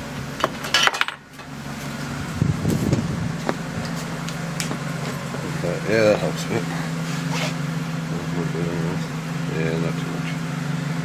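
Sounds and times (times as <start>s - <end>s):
car engine idling hum: 0.0s - 11.0s.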